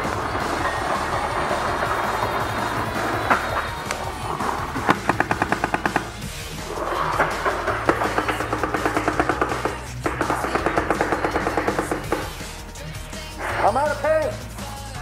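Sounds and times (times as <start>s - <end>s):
paintball marker firing rapidly: 1.3s - 12.6s.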